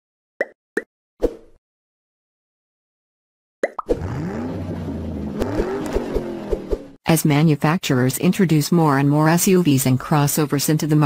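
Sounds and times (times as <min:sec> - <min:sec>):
pop sound effects: 0:03.6 - 0:04.0.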